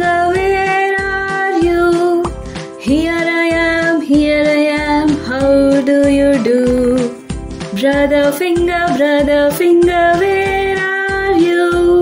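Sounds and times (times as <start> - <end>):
backing track: 0.0 - 12.0
person singing: 0.0 - 12.0.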